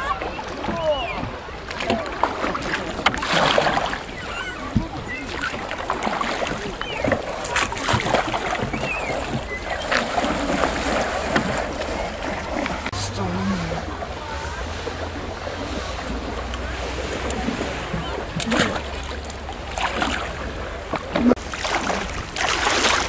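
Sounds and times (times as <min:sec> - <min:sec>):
oars splashing in water: 0:00.0 - 0:23.0
indistinct voices: 0:12.1 - 0:20.2.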